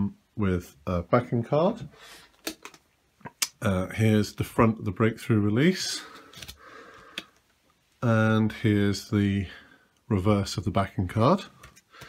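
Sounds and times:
plastic sleeve rustling: 6.0s - 7.5s.

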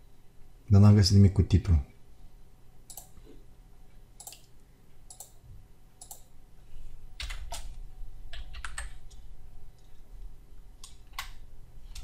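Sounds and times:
keyboard and mouse clicks: 2.9s - 3.3s, 4.2s - 4.5s, 5.1s - 5.4s, 6.0s - 6.3s, 7.2s - 10.0s, 10.8s - 12.0s.

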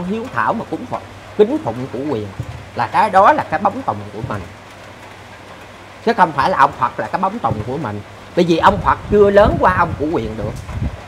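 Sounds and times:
man speaking: 0.0s - 4.6s, 6.0s - 10.6s
outdoor ambience hiss: 0.0s - 11.0s.

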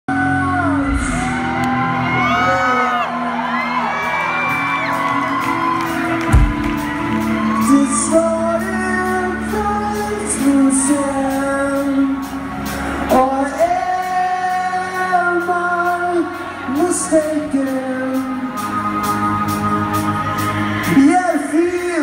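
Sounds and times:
person singing: 0.1s - 4.6s, 7.2s - 22.0s
synth-rock band playing live: 0.1s - 22.0s.

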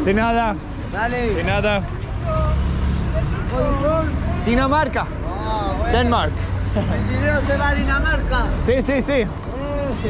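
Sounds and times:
rumble of passing vehicles: 0.0s - 10.0s
voices: 0.0s - 10.0s.

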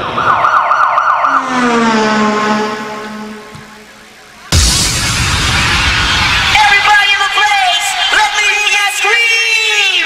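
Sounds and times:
siren yelping and wailing: 0.0s - 3.5s.

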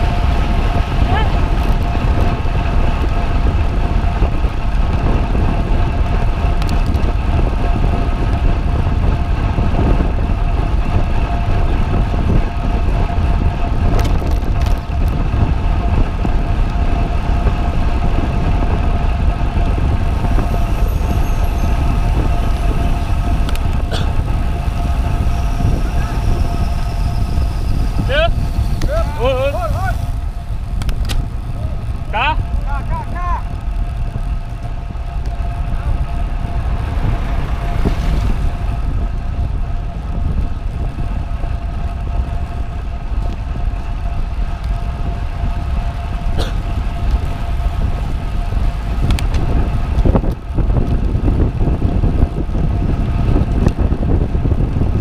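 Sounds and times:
road and tyre noise: 0.0s - 55.0s
wind rushing over microphone: 0.0s - 55.0s.

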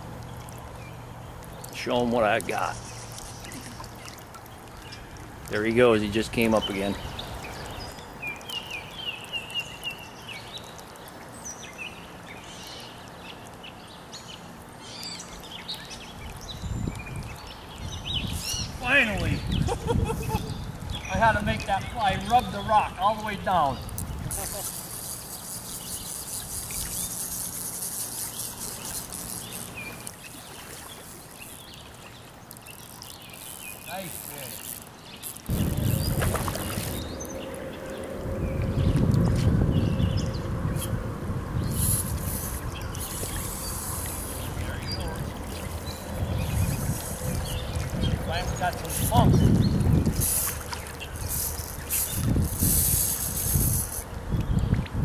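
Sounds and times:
stream water flowing: 0.0s - 55.0s.

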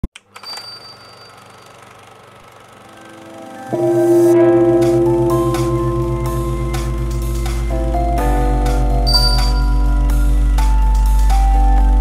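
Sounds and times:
high ringing tone: 0.4s - 1.9s, 2.8s - 10.6s
intro music: 2.8s - 12.0s
steady low hum: 2.8s - 12.0s.

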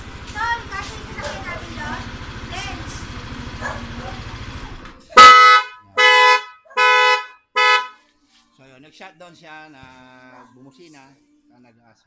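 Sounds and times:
scooter engine idling: 0.0s - 7.8s
scooter horn beeps: 5.1s - 8.0s.

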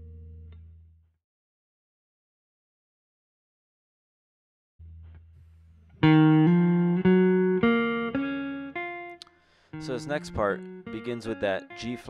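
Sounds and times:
faint guitar pluck: 0.0s - 0.9s, 4.8s - 12.0s
electric guitar chord ringing: 5.9s - 12.0s.

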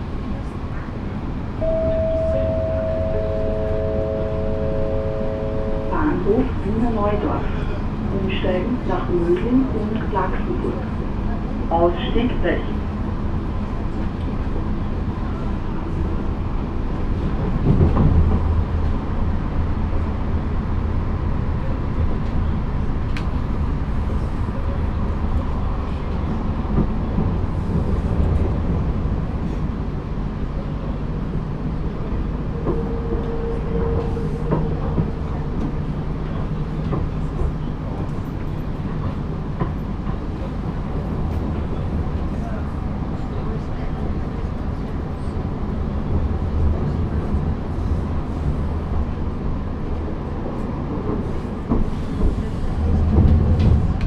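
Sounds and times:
train wheels rumbling: 0.0s - 54.0s
faint steady tone: 1.6s - 6.0s
brief higher tone: 1.6s - 6.3s.

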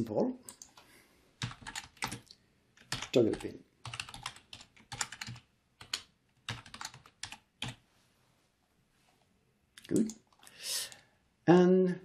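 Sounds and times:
keyboard typing clicks: 1.4s - 7.8s.

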